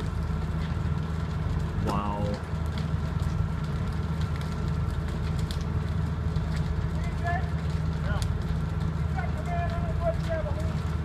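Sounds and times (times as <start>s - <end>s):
fire engine running: 0.0s - 11.0s.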